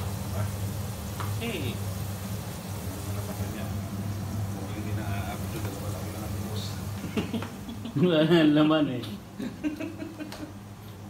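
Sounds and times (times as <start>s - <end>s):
food frying in oil: 0.0s - 11.0s.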